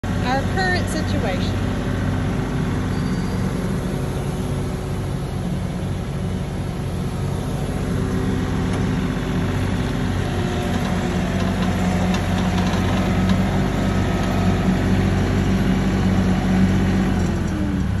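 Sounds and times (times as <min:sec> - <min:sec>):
heavy diesel engines droning: 0:00.0 - 0:18.0.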